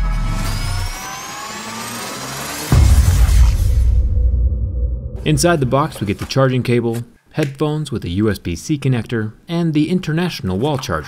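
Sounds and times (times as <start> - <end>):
rising tones whine: 0.0 - 5.6
deep boom: 2.7 - 5.9.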